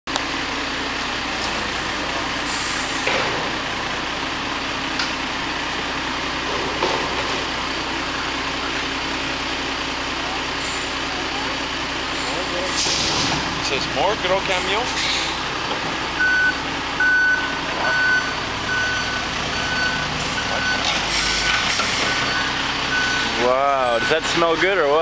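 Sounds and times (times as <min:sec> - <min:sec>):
garbage truck diesel engine: 0:00.1 - 0:25.0.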